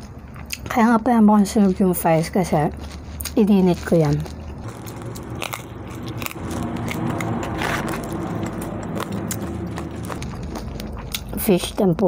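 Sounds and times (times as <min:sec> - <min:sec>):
french fries being chewed: 0:00.0 - 0:12.0.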